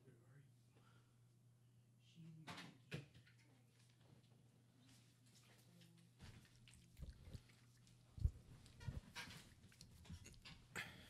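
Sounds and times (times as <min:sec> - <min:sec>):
faint low room hum: 0:00.0 - 0:11.0.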